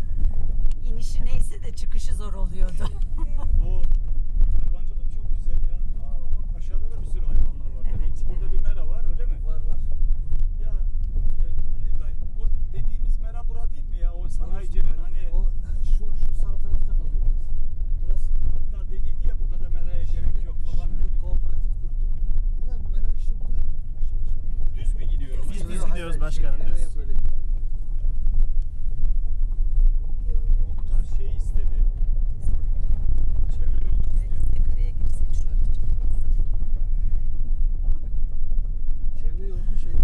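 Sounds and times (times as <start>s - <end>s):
car cabin rumble: 0.0s - 40.0s
people talking: 0.8s - 3.9s, 4.6s - 9.9s, 10.6s - 21.7s, 22.6s - 27.4s, 30.1s - 32.8s, 33.4s - 37.3s, 39.1s - 40.0s
people laughing: 2.6s - 3.7s.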